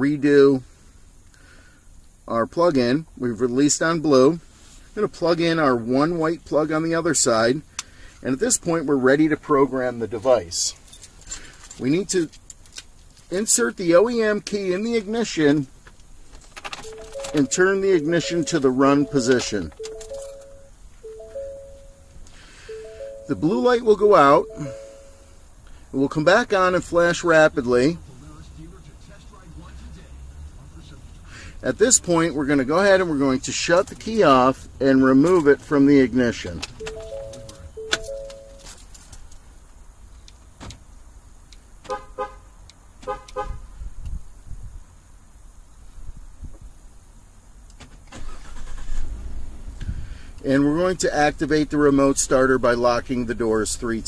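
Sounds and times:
low background hum: 4.3 - 41.8
quick beeps: 16.8 - 25.4, 36.8 - 38.6
three-note electronic chime: 16.9 - 22.1, 22.7 - 25.3.

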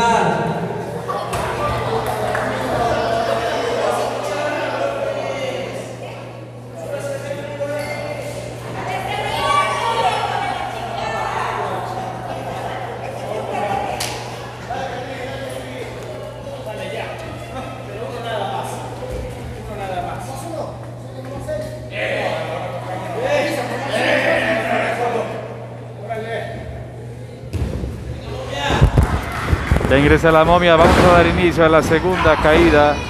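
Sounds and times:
indistinct voices echoing: 0.0 - 33.0
steady low hall hum: 0.0 - 33.0.

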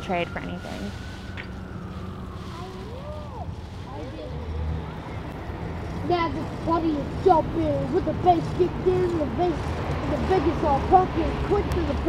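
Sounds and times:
distant siren: 0.0 - 12.0
vehicle traffic rumble: 0.0 - 12.0.

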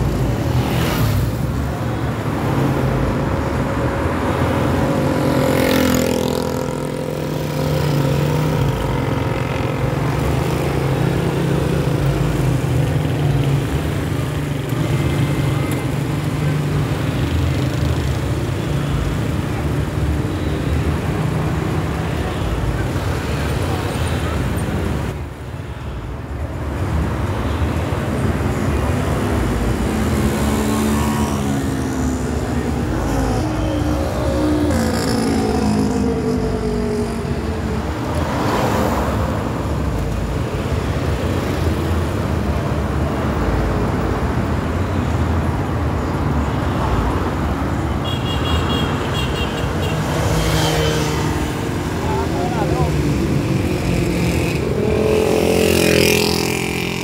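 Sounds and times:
car engines passing: 0.0 - 57.0.

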